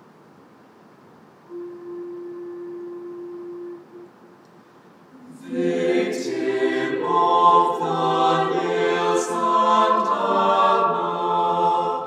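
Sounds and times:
faint room hiss: 0:00.0 - 0:12.0
steady mid-pitched musical note: 0:01.5 - 0:04.4.

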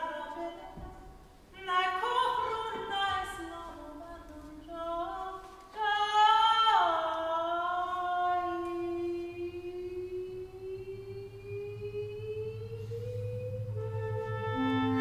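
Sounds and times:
low hum: 0:08.7 - 0:15.0
chamber ensemble music: 0:10.3 - 0:15.0
long note sliding upward: 0:11.4 - 0:15.0.

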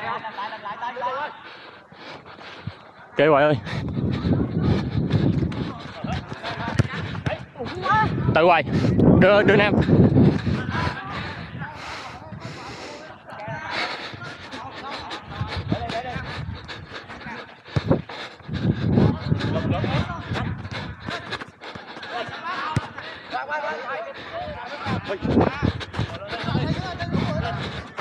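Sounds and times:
ball being kicked: 0:06.4 - 0:07.4.

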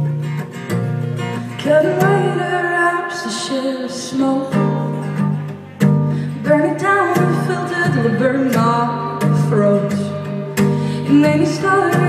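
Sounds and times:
strummed acoustic guitar: 0:00.0 - 0:12.0
woman singing folk song: 0:01.2 - 0:12.0.

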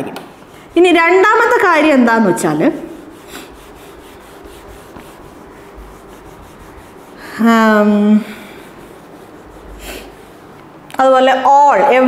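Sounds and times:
cloth wiping whiteboard: 0:00.3 - 0:10.7.

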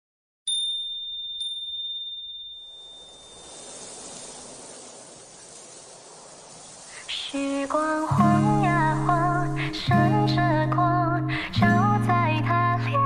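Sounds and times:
high bell-like dings: 0:00.5 - 0:03.7
soft steady hiss: 0:02.7 - 0:11.6.

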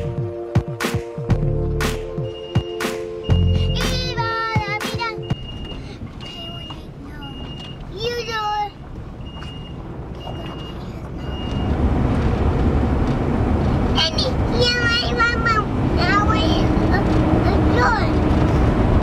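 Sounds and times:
engine and road noise: 0:00.0 - 0:00.6, 0:01.2 - 0:19.0
electronic warning chime beeping: 0:02.2 - 0:03.9, 0:05.2 - 0:08.0, 0:09.2 - 0:11.7
children's voices: 0:03.6 - 0:08.8, 0:14.0 - 0:18.3.

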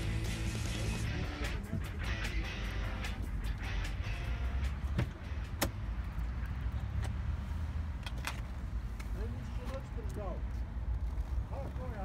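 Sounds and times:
car door latch clicking: 0:04.9 - 0:05.8.

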